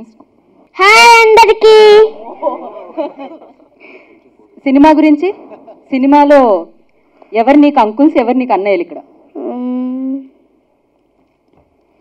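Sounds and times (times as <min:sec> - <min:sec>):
girl humming a vowel into microphone: 0:09.4 - 0:10.3.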